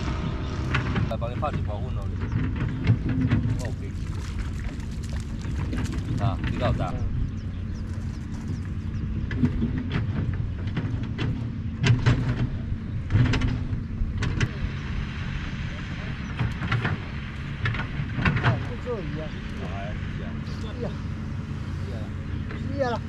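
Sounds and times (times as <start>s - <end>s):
low motor hum: 0.0s - 23.0s.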